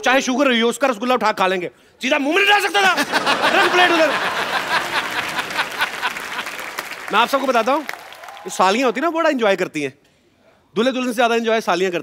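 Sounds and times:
audience applauding: 0:03.2 - 0:09.0.

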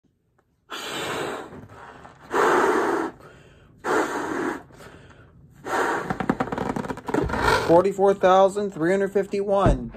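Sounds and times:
quiet breathing: 0:00.6 - 0:06.4
breath blown into balloon: 0:00.7 - 0:05.0, 0:05.6 - 0:06.5.

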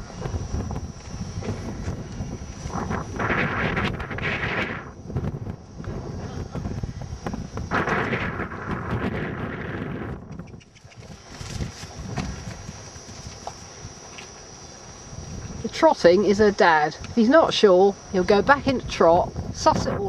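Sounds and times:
gale buffeting microphone: 0:00.0 - 0:20.0.

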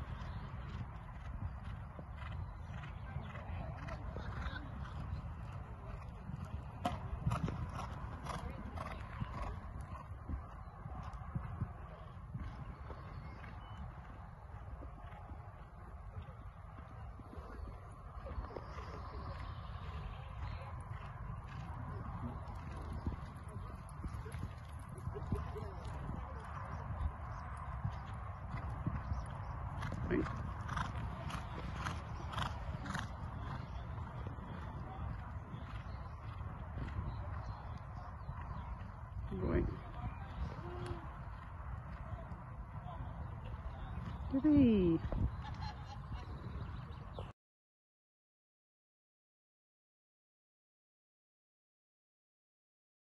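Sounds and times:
horse hoofbeats on sand: 0:00.0 - 0:47.3.

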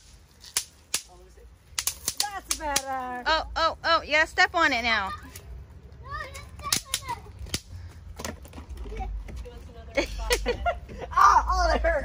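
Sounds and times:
snap fireworks popping: 0:00.0 - 0:01.1, 0:01.7 - 0:02.9.

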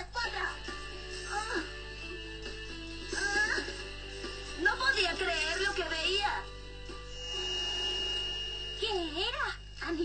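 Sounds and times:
background music: 0:00.0 - 0:10.0
thin high held note: 0:07.0 - 0:09.8.

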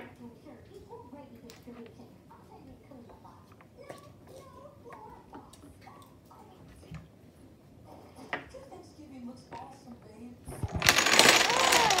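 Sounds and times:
dominoes toppling on tabletop: 0:10.6 - 0:12.0.

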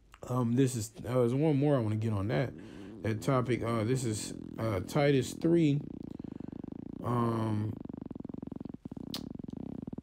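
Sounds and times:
low pulsing buzzing hum: 0:00.0 - 0:10.0.

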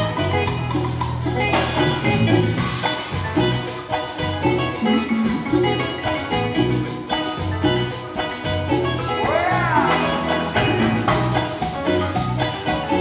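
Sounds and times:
congas: 0:00.0 - 0:13.0
salsa band playing: 0:00.0 - 0:13.0.

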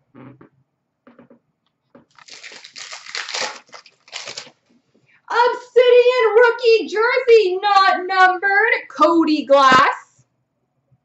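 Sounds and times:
cards and plastic holders rustling: 0:02.1 - 0:04.8.

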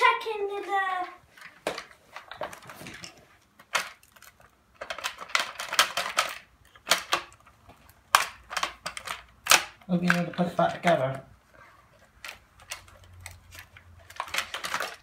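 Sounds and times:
plastic clicks and rattles: 0:01.4 - 0:11.3, 0:12.0 - 0:15.0.

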